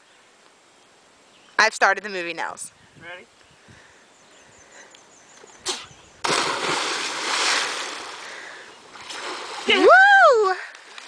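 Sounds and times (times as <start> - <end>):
loud splash into water: 6.2 - 8.1
water churning and spraying: 6.2 - 9.9.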